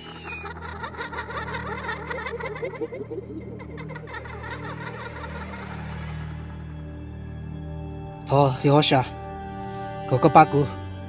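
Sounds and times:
high-pitched chattering: 0:00.0 - 0:04.7.

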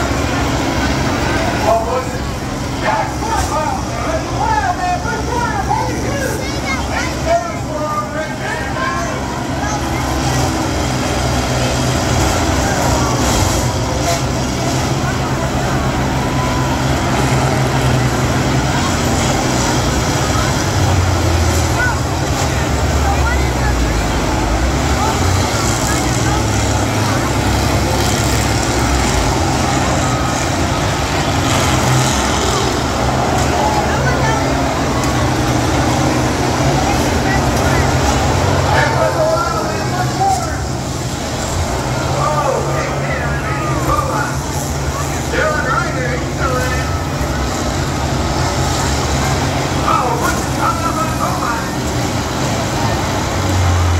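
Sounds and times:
crowd voices: 0:00.0 - 0:53.9
diesel engines running and revving: 0:00.0 - 0:53.9.

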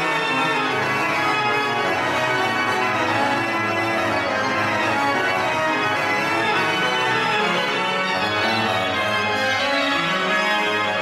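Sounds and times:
pipe organ chords: 0:00.0 - 0:11.0.

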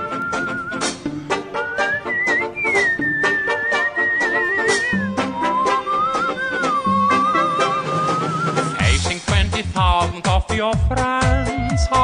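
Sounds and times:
whistle-like lead melody: 0:00.0 - 0:09.0
pop music beat: 0:08.6 - 0:12.0.

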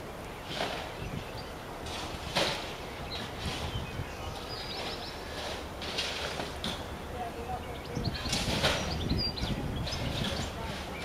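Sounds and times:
small birds chirping: 0:00.0 - 0:05.8, 0:06.5 - 0:11.0.

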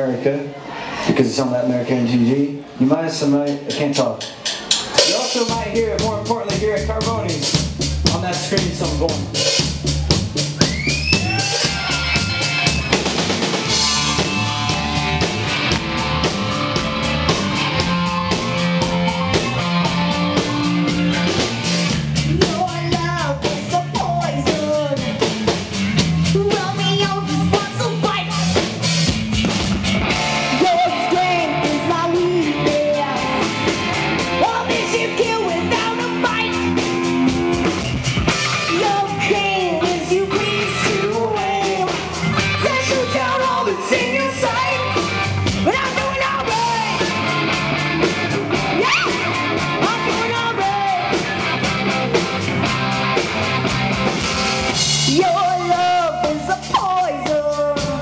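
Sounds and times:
rock band playing live: 0:02.6 - 0:58.0
woman singing: 0:30.5 - 0:33.5, 0:38.7 - 0:45.0.

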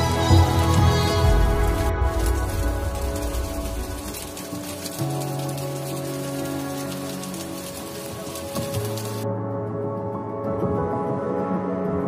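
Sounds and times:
waterfall spray on rock: 0:00.0 - 0:09.2
background music of held notes: 0:00.0 - 0:12.0.

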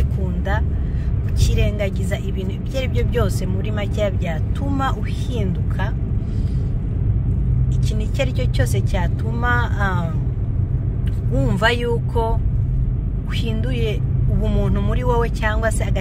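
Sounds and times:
car interior rumble: 0:00.0 - 0:16.0.

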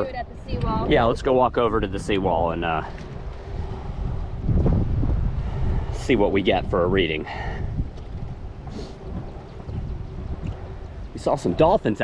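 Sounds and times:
wind buffeting microphone: 0:00.0 - 0:12.0
footsteps on wooden boards: 0:07.8 - 0:11.2.

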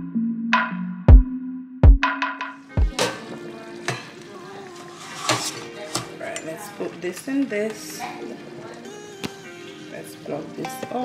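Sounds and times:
electronic music with bass: 0:00.0 - 0:02.9
metal pot knocks: 0:02.8 - 0:04.1
tap water running into pot: 0:02.9 - 0:11.0.

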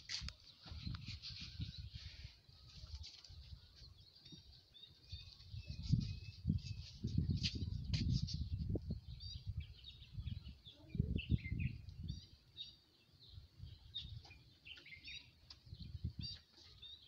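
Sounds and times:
small birds chirping: 0:00.0 - 0:17.0
low rumbling on microphone: 0:05.2 - 0:12.5.

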